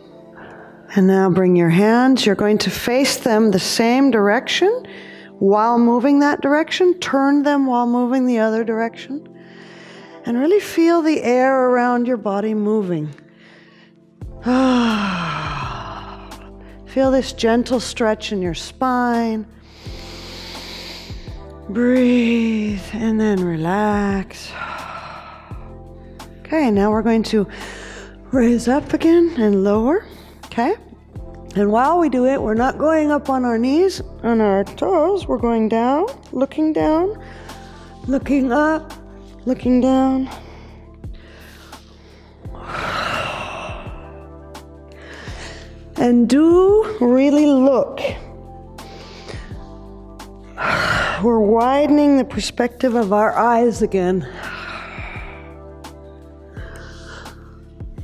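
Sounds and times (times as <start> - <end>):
soft background music: 0.0 - 58.0
person breathing deeply: 0.1 - 0.9, 19.6 - 21.4, 40.3 - 44.4, 45.0 - 45.9, 48.8 - 51.2.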